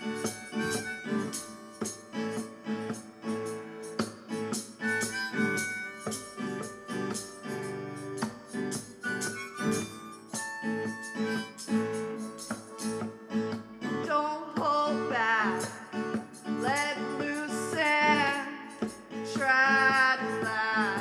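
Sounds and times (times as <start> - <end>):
harmonica lead: 0.0 - 14.0
live pop band: 0.0 - 21.0.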